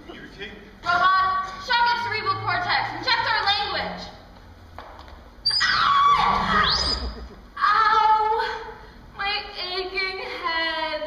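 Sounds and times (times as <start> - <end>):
electronic sci-fi warbling tones: 5.5 - 7.3.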